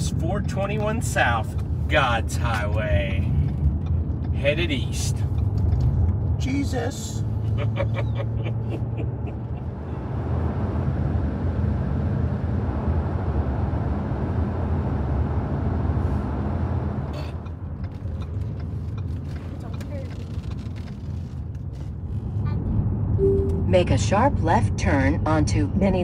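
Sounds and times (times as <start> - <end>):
car engine low rumble: 0.0 - 26.0.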